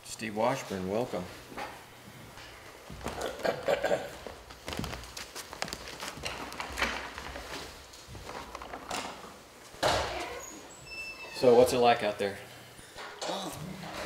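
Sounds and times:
footsteps: 0:00.6 - 0:10.7
chair shifting: 0:01.5 - 0:11.4, 0:12.9 - 0:14.0.

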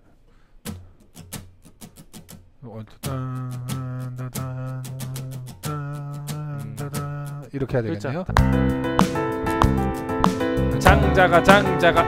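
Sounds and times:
acoustic guitar strumming: 0:00.6 - 0:07.5, 0:08.3 - 0:12.0.

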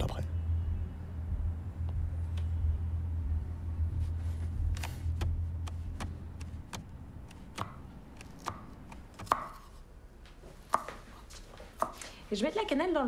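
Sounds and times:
knife chopping on wooden board: 0:05.2 - 0:09.7.

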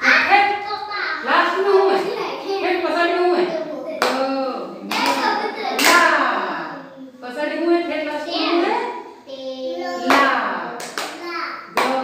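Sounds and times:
sharp hand claps: 0:04.9 - 0:06.1, 0:10.0 - 0:12.0.

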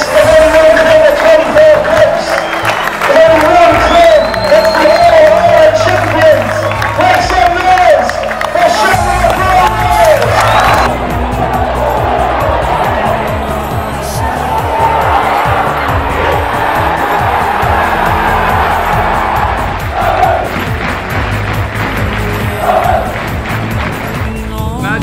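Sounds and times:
football crowd cheering: 0:00.0 - 0:24.6
background music with bass line: 0:00.0 - 0:25.0.

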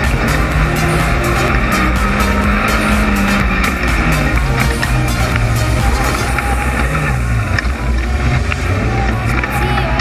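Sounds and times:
buggy engine revving: 0:00.0 - 0:10.0.

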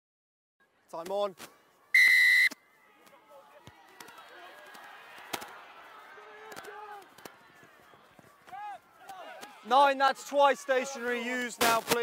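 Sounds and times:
referee's whistle blast: 0:02.0 - 0:02.6
crowd and players shouting: 0:02.5 - 0:12.0.

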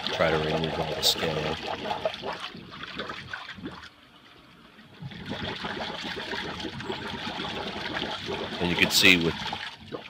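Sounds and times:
water and scale rushing from pipe: 0:05.0 - 0:10.0.

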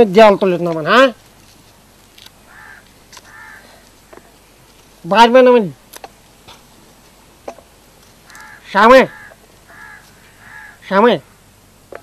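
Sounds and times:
person speaking: 0:00.0 - 0:01.2, 0:05.0 - 0:05.9
faint bird calls: 0:02.1 - 0:04.6, 0:08.1 - 0:11.6.

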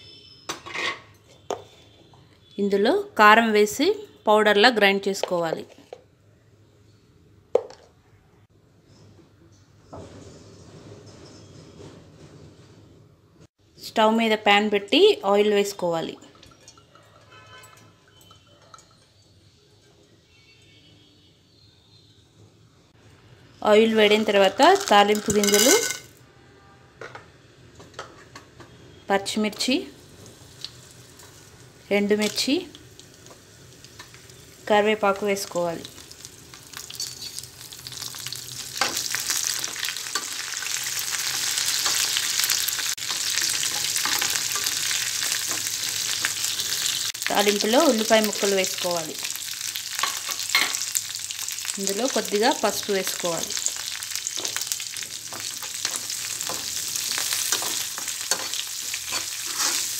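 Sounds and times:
oil sizzling in pan: 0:29.5 - 0:59.9.

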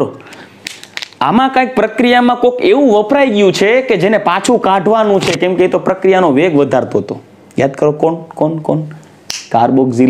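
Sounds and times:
man lecturing: 0:01.2 - 0:10.0.

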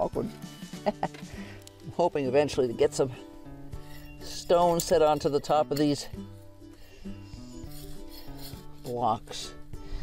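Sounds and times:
quiet background music: 0:00.0 - 0:10.0
hands rubbing dry soil: 0:03.8 - 0:09.6.

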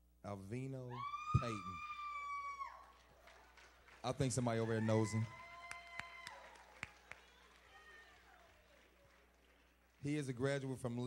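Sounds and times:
woman's high-pitched cheering yell: 0:00.9 - 0:03.0, 0:04.8 - 0:08.4.

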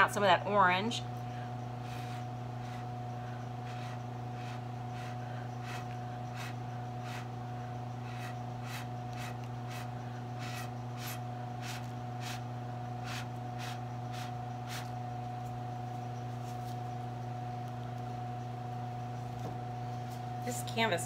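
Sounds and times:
low hum: 0:00.0 - 0:21.0
breath puffs through a straw: 0:03.6 - 0:07.3.

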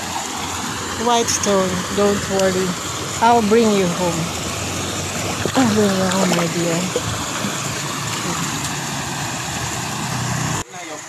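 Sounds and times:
river water rushing over rocks: 0:00.0 - 0:01.0, 0:04.0 - 0:10.6.

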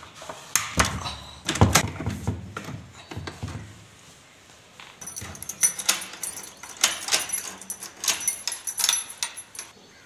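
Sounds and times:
door lock clicking and rattling: 0:05.0 - 0:09.7.

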